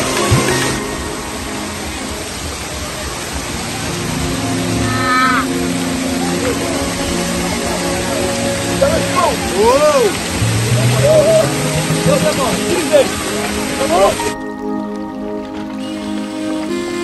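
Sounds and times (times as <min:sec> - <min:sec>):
background music with low notes: 0:00.0 - 0:17.0
waterfall rushing: 0:00.0 - 0:17.0
person crying out: 0:04.8 - 0:05.5.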